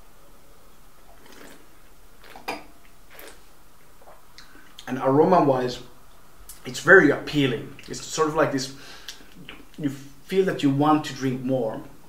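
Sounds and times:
wine slurping in mouth: 1.1 - 4.2.

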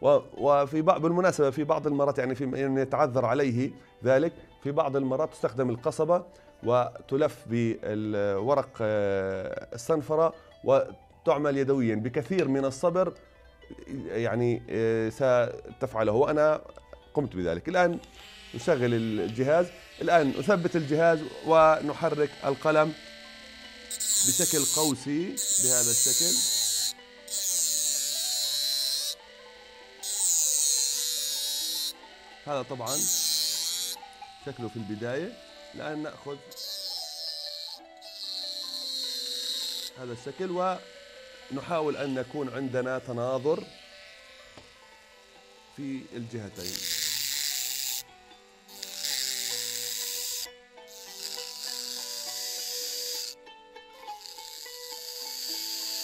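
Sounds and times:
soft background music: 0.0 - 56.0
rotary tool grinding metal: 16.2 - 56.0.

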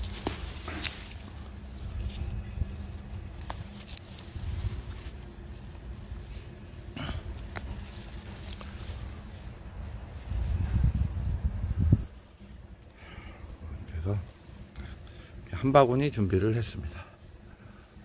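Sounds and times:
plant stems snapping: 0.0 - 2.4, 3.2 - 5.1, 7.0 - 9.1
leaves rustling: 0.0 - 12.5, 14.0 - 16.4
low microphone rumble: 0.0 - 12.6.

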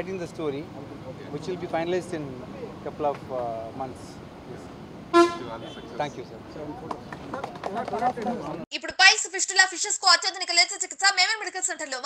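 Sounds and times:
vehicle horn toot: 5.1 - 6.0.

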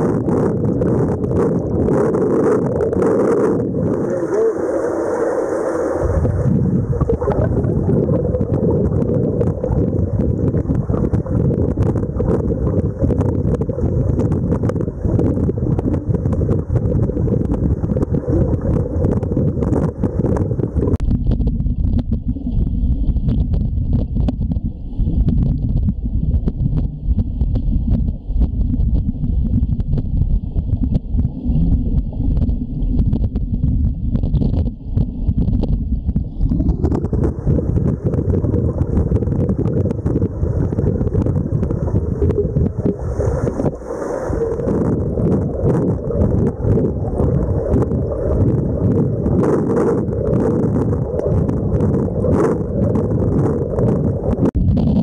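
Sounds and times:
underwater pool water churning: 0.0 - 55.0
faint high whine: 3.3 - 8.4.

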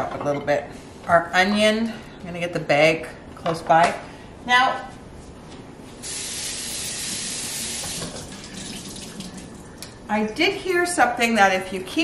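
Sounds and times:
tap water running into sink: 6.5 - 9.6.

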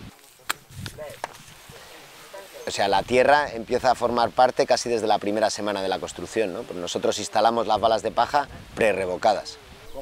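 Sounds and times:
faint background voices: 0.0 - 3.0.

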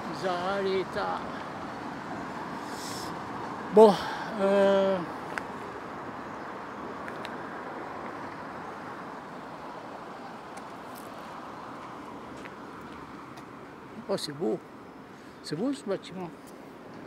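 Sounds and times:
road traffic noise: 0.0 - 17.0.

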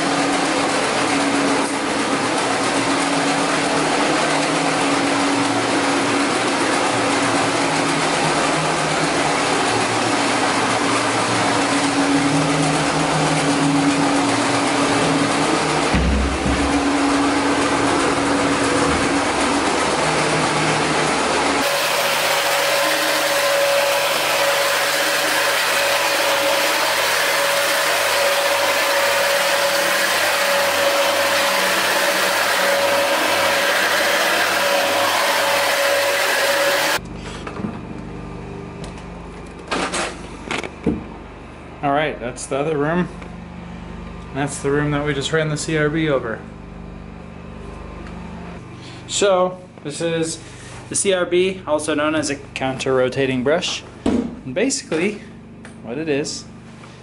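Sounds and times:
carpet brush machine motor hum: 0.0 - 57.0.

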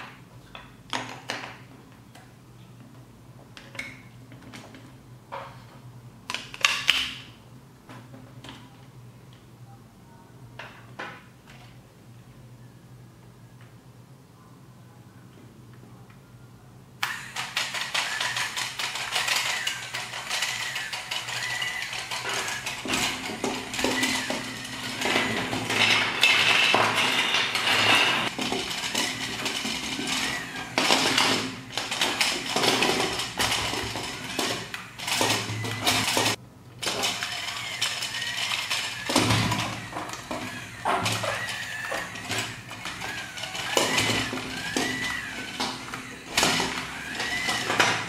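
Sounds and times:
plastic tracks and gears clattering: 17.0 - 48.0
small electric motor whining: 17.1 - 25.8, 28.3 - 31.2, 33.2 - 36.4, 37.0 - 48.0.

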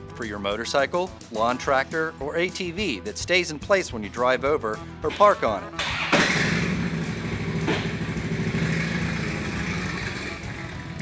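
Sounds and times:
small vehicle engine running: 5.8 - 11.0.

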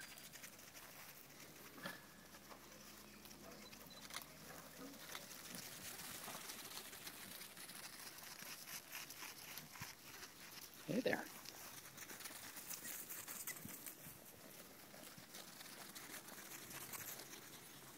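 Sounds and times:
small hooves on sand and grass: 0.0 - 17.9.

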